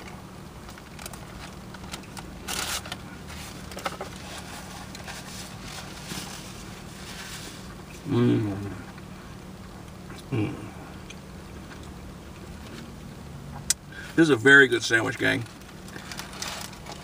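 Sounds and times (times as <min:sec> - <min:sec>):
person chewing crusty bread: 0:00.0 - 0:08.1, 0:15.6 - 0:17.0
steady low hum: 0:00.0 - 0:17.0.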